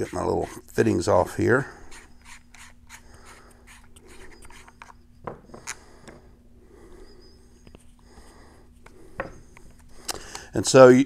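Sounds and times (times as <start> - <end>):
steady low hum: 0.0 - 11.0
plastic fittings rubbing: 1.9 - 5.0.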